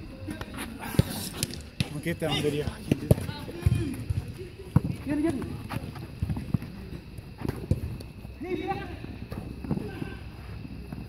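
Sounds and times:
feet kicking ball thumps: 2.7s - 8.2s.

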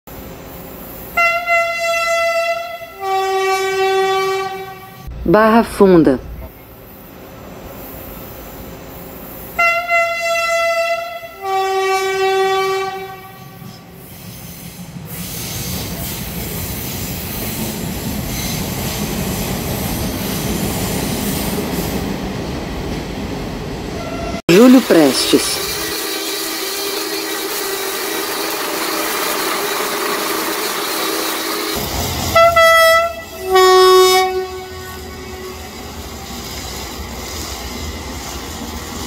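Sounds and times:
train rolling on rails: 0.1s - 39.0s
electric train horn blasts: 1.1s - 5.2s, 9.6s - 14.0s, 24.0s - 24.4s, 31.5s - 36.0s
wheel-on-rail noise: 24.5s - 33.5s, 34.3s - 39.0s.

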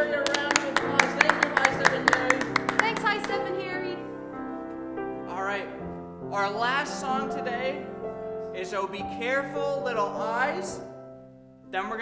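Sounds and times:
people clapping: 0.0s - 3.6s
grand piano music: 0.0s - 12.0s.

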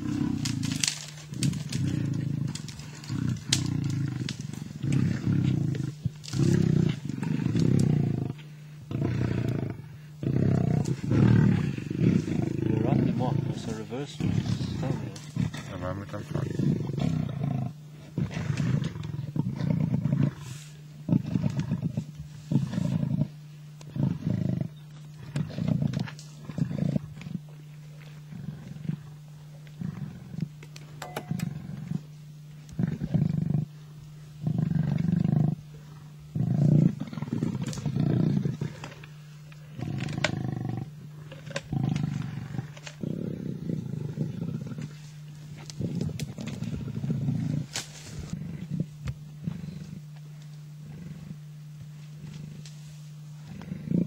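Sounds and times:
lions growling: 0.0s - 33.8s, 34.4s - 50.2s, 50.8s - 51.5s, 53.4s - 54.0s
low hum: 0.0s - 54.0s.

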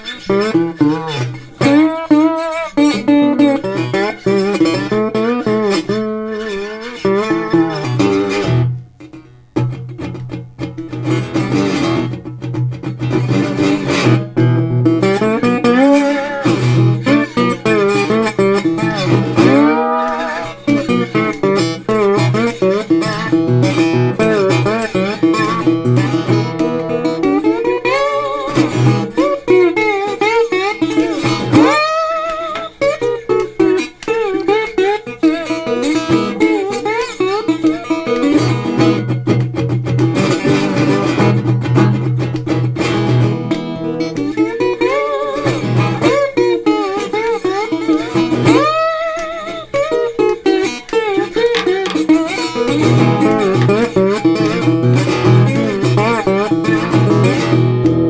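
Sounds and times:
slide resonator guitar: 0.0s - 58.0s.

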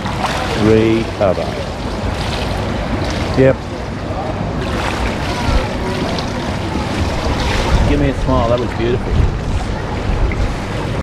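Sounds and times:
pool water splashing: 0.0s - 11.0s.

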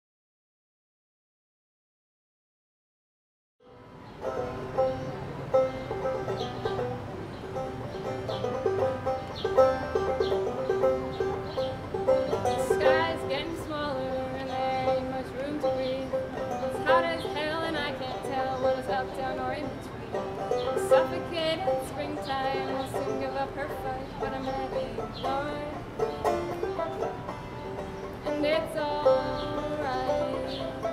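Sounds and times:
banjo picking: 3.7s - 30.9s
cello: 3.7s - 30.9s.

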